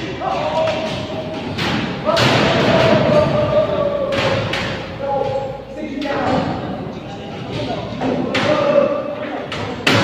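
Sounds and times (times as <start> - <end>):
people calling out: 0.0 - 6.1.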